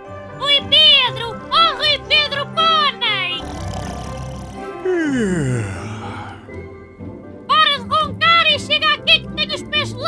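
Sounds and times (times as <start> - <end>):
man snoring: 3.4 - 6.6.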